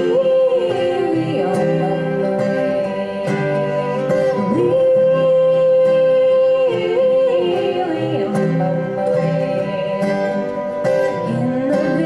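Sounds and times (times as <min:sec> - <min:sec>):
acoustic guitars: 0:00.0 - 0:12.0.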